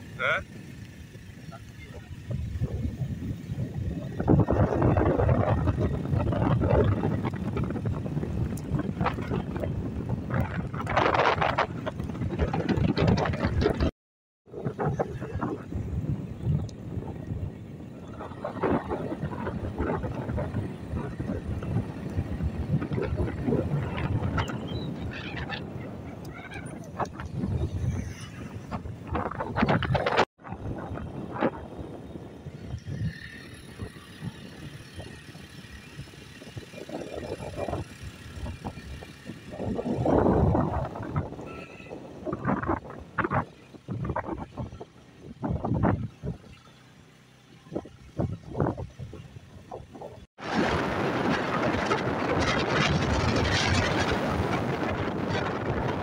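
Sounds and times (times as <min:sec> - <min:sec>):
vehicle road and wind noise: 0:00.0 - 0:56.0.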